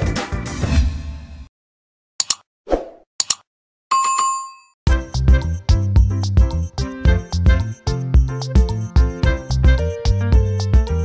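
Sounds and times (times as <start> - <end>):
music: 0.0 - 1.5, 4.9 - 11.0.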